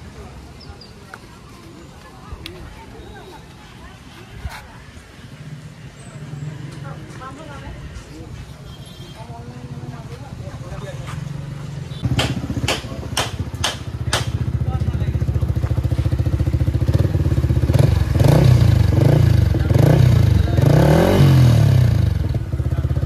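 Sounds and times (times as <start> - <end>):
motorcycle engine idling and revving: 9.2 - 23.0.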